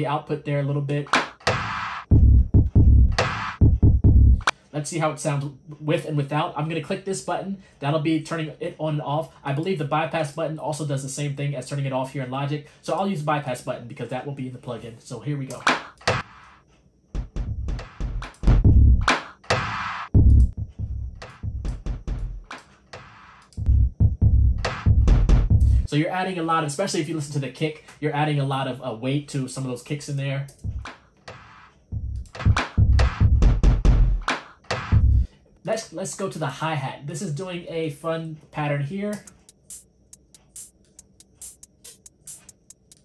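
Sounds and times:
sharp snare hit: 0:01.1 - 0:02.1, 0:03.2 - 0:03.6, 0:15.6 - 0:16.4, 0:19.1 - 0:20.1, 0:34.3 - 0:35.0
electronic trap drum beat: 0:01.1 - 0:04.5, 0:15.6 - 0:16.6, 0:17.2 - 0:25.9, 0:30.6 - 0:35.3, 0:39.2 - 0:43.0
distorted bass and kick hits: 0:01.5 - 0:04.5, 0:17.2 - 0:22.5, 0:23.6 - 0:25.9, 0:30.6 - 0:30.9, 0:31.9 - 0:35.3.

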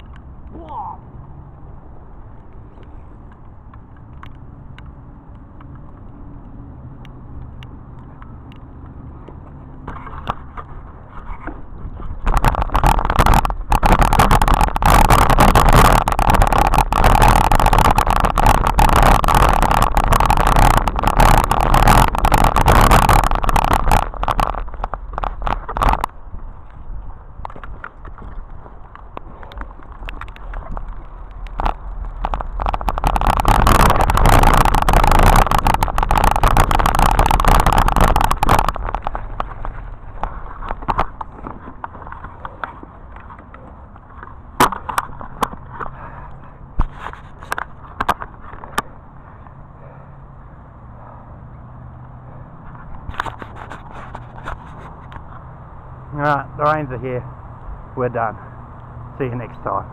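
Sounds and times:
bike rattling and knocking: 0:00.0 - 0:00.9, 0:02.0 - 0:57.2
bike tyres rolling on dirt: 0:00.0 - 0:59.9
wind rushing over camera: 0:00.0 - 0:59.9.

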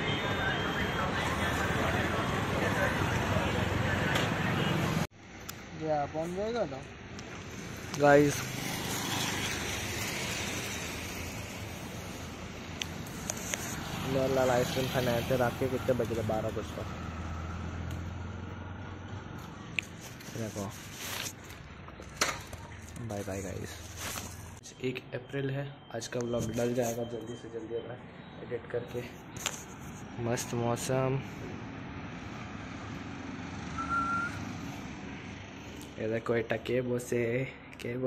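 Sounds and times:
distant city traffic hum: 0:00.0 - 0:38.0
street background noise: 0:00.0 - 0:38.0
brief high tone: 0:33.8 - 0:34.4.

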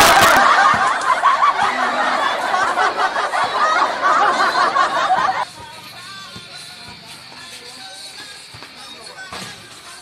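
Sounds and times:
high-pitched snickering laughter: 0:00.0 - 0:05.4.

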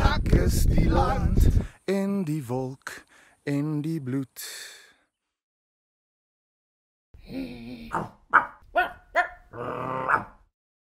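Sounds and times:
dog barking: 0:07.9 - 0:10.4
dog growling: 0:09.5 - 0:10.4.

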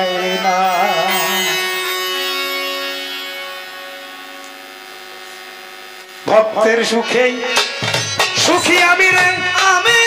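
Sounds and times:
sustained music chord: 0:00.0 - 0:06.0.

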